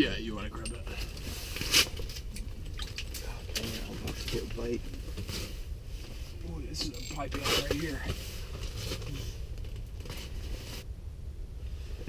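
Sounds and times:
steady low rumble: 0.0s - 12.0s
rustling and crinkling handling: 0.8s - 10.9s.

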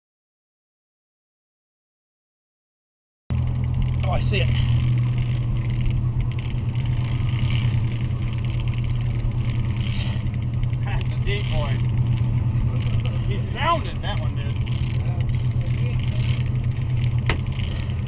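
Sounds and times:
boat engine drone: 3.3s - 18.0s
fishing reel whirring: 3.4s - 18.0s.

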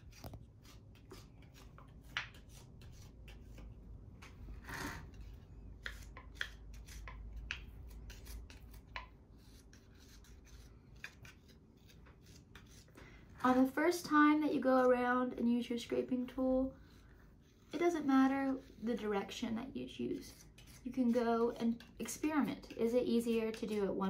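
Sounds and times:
tool scraping clay: 0.0s - 24.0s.

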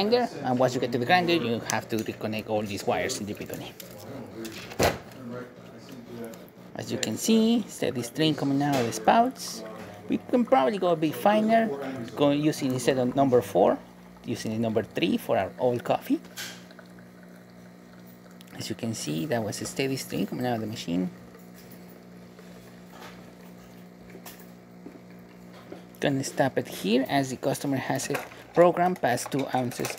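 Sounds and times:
coffee running into a glass: 0.9s - 4.5s, 6.8s - 29.9s
espresso machine pulling a shot: 6.9s - 29.9s.

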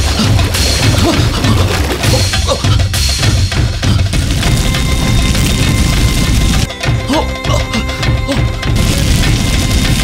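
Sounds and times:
dense crackling: 0.0s - 2.4s, 4.1s - 6.7s, 8.7s - 10.0s
dramatic background score: 0.0s - 10.0s.

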